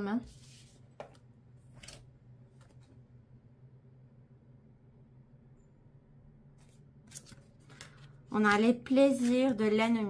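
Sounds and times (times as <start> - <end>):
cards sliding and flicking: 6.6 - 8.0.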